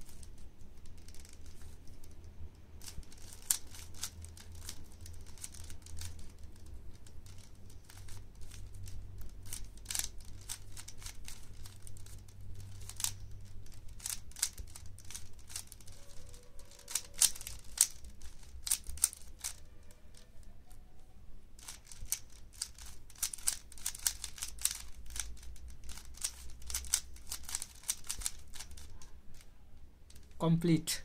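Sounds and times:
puzzle cube clicking as turned: 0.0 - 20.2, 21.6 - 29.5.

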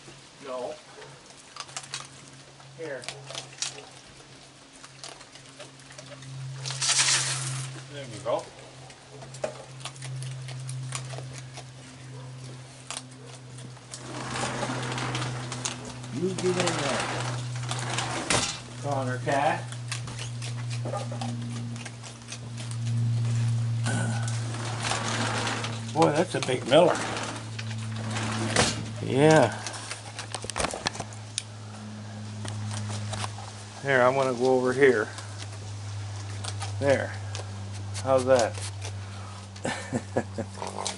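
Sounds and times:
animals crunching food: 0.0 - 40.9
steady low hum: 0.0 - 40.9.

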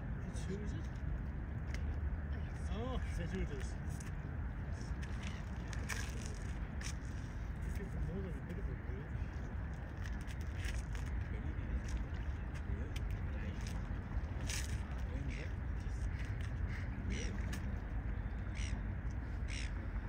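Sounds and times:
distant jet airliner rumble: 0.0 - 20.0.

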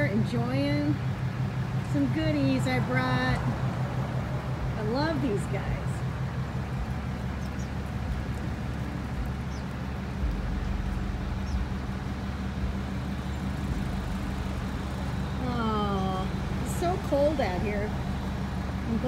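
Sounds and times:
woman speaking: 0.0 - 1.0, 1.9 - 3.6, 4.7 - 6.1, 15.4 - 18.0
car engines idling: 0.0 - 19.0
bird chirps: 6.5 - 17.2.

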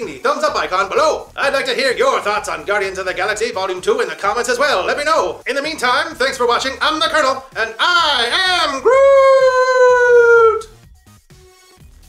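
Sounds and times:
quiet electronic music: 0.0 - 10.8
man holding a high note: 8.4 - 10.7.

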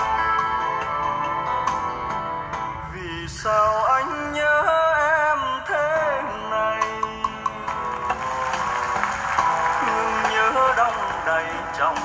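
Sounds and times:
ballad through speakers: 0.0 - 12.0.

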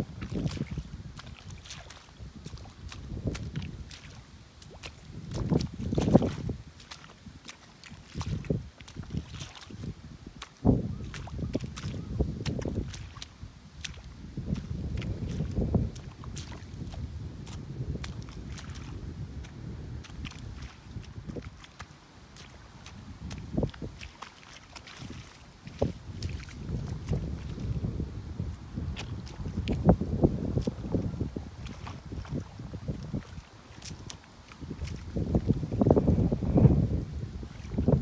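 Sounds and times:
hoe sloshing in mud: 0.0 - 27.9, 28.8 - 36.8
wind rumble on microphone: 0.0 - 38.0.

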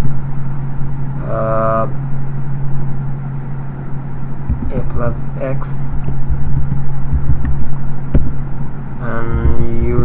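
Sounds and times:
low hum and rumble: 0.0 - 10.0.

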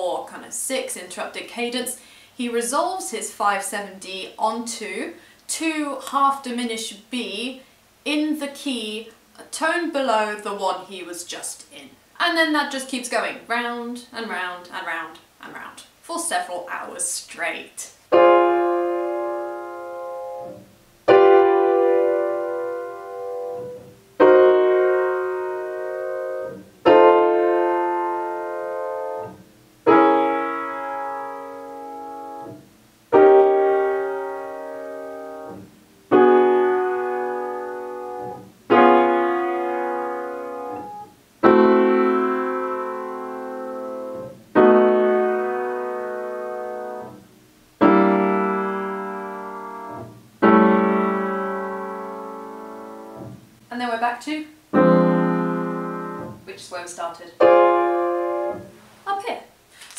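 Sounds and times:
upright piano block chords: 18.1 - 53.6, 54.7 - 56.5, 57.4 - 58.7.

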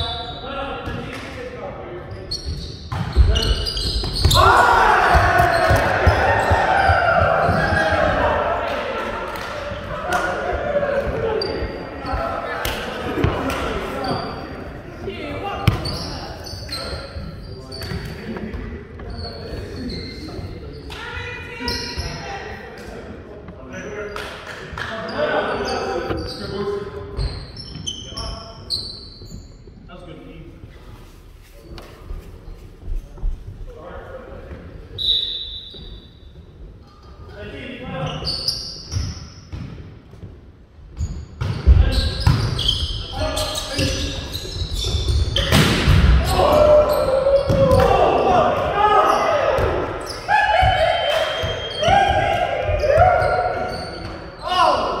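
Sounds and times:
sneakers squeaking on floor: 0.0 - 1.1, 2.0 - 8.4, 9.7 - 22.6, 25.0 - 30.0, 34.4 - 55.0
players shouting: 4.2 - 14.3, 45.4 - 55.0
volleyball hits and thuds: 45.3 - 46.3.

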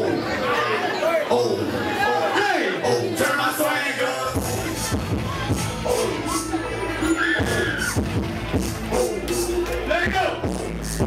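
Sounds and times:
crowd chatter: 0.0 - 11.0
hip hop over sound system: 2.8 - 11.0
voice over bass beat: 4.3 - 6.7.

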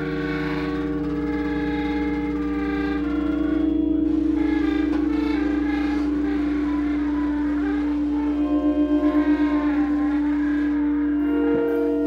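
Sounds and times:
droning improvised music: 0.0 - 12.0.

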